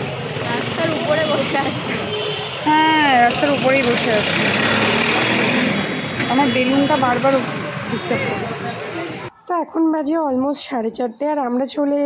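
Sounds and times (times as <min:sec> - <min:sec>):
traffic rushing: 0:00.0 - 0:09.7
crowd noise: 0:00.0 - 0:10.1.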